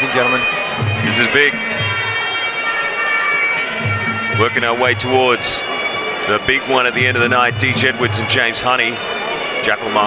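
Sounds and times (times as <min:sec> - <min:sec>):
low pulsing beat: 0:00.0 - 0:02.4, 0:03.6 - 0:08.6
sustained high tones: 0:00.0 - 0:10.0.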